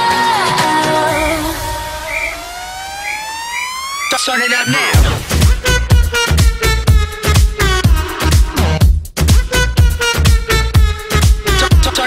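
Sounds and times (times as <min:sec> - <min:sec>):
synth chirps: 0:01.1 - 0:05.0
rising synth tone: 0:01.1 - 0:05.2.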